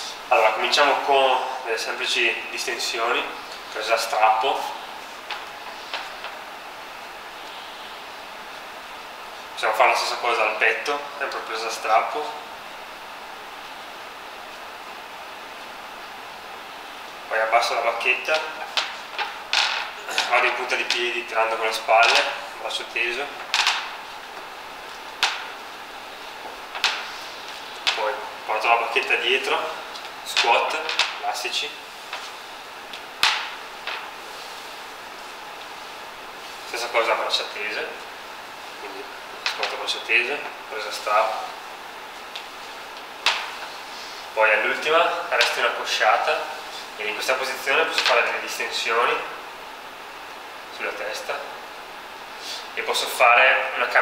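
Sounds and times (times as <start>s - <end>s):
room hiss: 0.0s - 54.0s.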